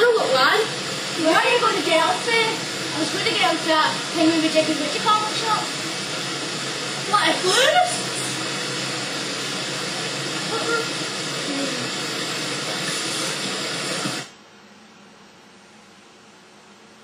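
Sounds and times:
electronic hiss: 0:00.0 - 0:14.4.

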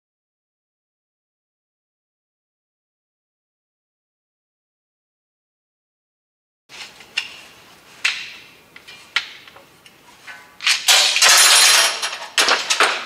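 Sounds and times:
metal parts clinking and rattling: 0:10.3 - 0:13.0.

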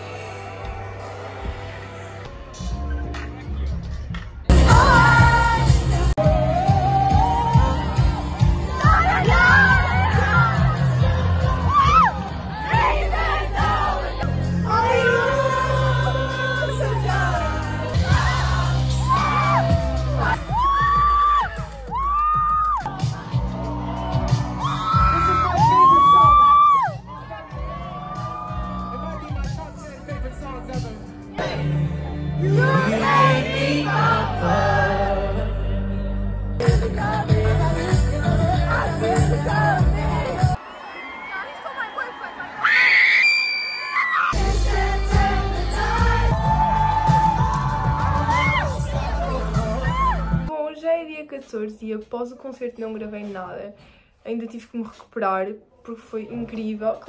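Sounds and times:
heavy bass: 0:00.0 - 0:40.6, 0:44.4 - 0:50.5
live pop concert music: 0:00.0 - 0:50.5
heavy bass beat: 0:36.6 - 0:40.6, 0:44.4 - 0:50.5.

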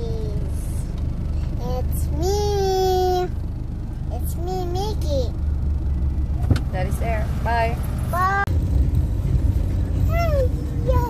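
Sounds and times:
car rumble from inside cabin: 0:00.0 - 0:11.0.

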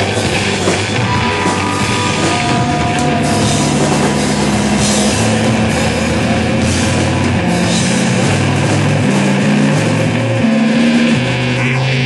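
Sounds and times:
drums and cymbals: 0:00.0 - 0:12.0
guitar and bass notes: 0:00.0 - 0:12.0.

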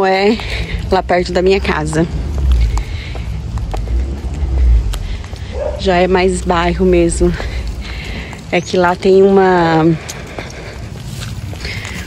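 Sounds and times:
footsteps on pavement: 0:00.0 - 0:12.0
low outdoor rumble: 0:00.0 - 0:12.0.

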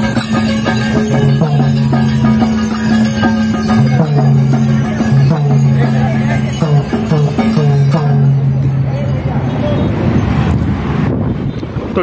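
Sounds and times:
busy street traffic: 0:00.0 - 0:12.0
voices in background: 0:00.1 - 0:12.0
wind buffeting microphone: 0:08.5 - 0:12.0.

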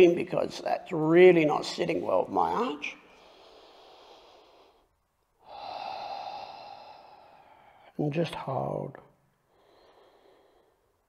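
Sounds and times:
man breathing: 0:03.0 - 0:08.0, 0:09.3 - 0:11.0.

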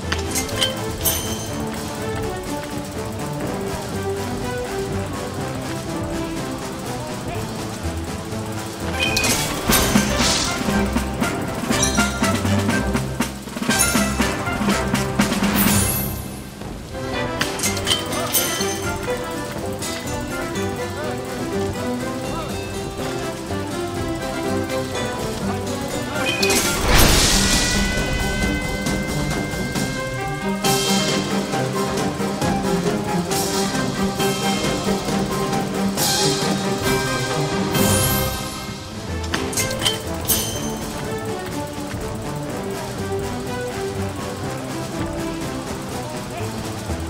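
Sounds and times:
rising celebration tones: 0:00.0 - 0:47.0
slot game music: 0:00.0 - 0:47.0
crashing hit sound effects: 0:26.4 - 0:30.3.

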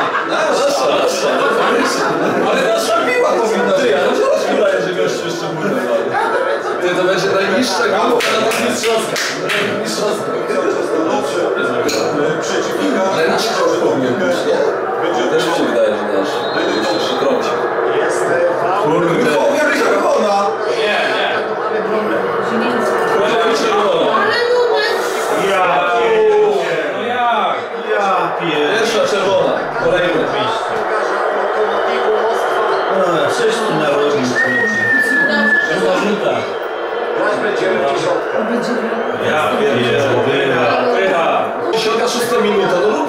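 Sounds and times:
people talking: 0:00.0 - 0:43.0
steady high-pitched whistle: 0:09.9 - 0:43.0
man speaking: 0:25.0 - 0:43.0.

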